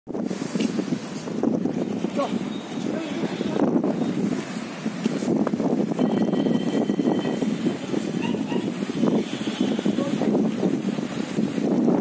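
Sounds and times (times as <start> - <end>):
wind buffeting microphone: 0.1 - 12.0.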